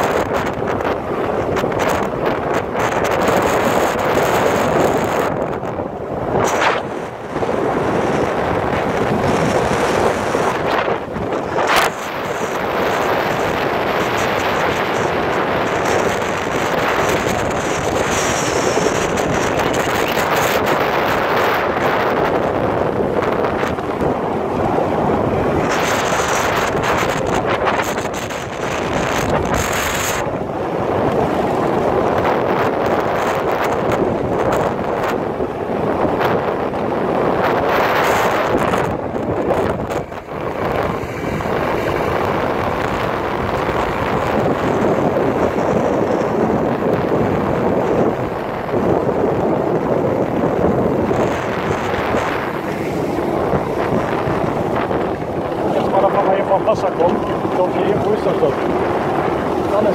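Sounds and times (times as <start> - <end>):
motor scooter running: 0.0 - 59.9
road noise: 0.0 - 59.9
wind on microphone: 0.0 - 59.9.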